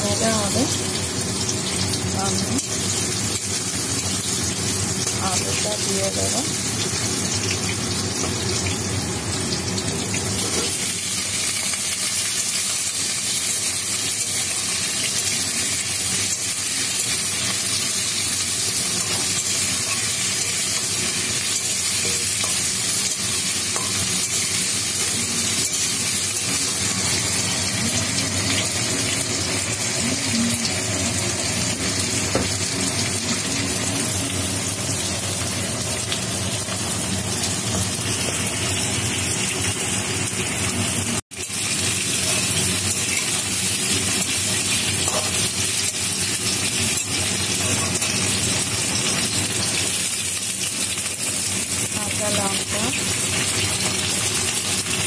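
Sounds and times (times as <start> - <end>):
vegetables sizzling in oil: 0.0 - 55.0
metal spatula in a pan: 18.7 - 27.2, 44.6 - 45.9.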